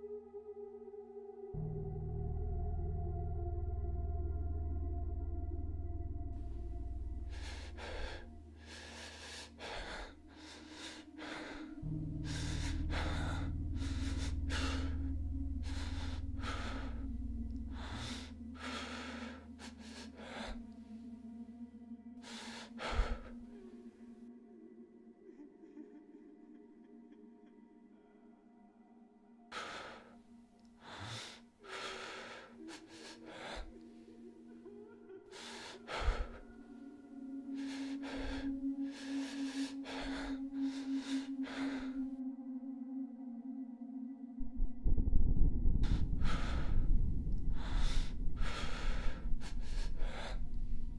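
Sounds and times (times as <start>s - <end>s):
low steady drone: 0.0s - 50.9s
person breathing heavily: 6.4s - 21.3s, 22.2s - 24.0s, 29.5s - 42.2s, 45.7s - 50.9s.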